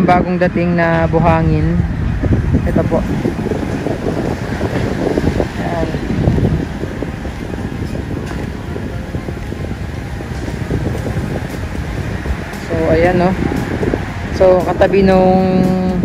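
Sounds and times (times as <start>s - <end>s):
wind rumble on microphone: 0.0s - 16.0s.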